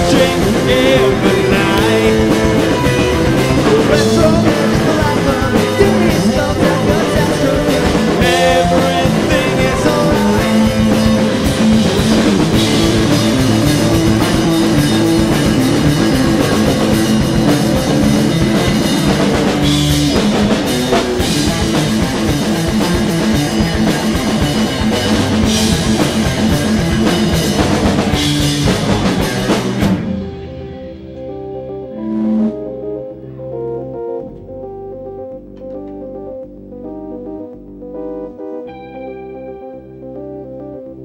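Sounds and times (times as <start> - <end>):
keyboard held notes: 0.0 - 41.0
live rock band playing: 0.0 - 41.0.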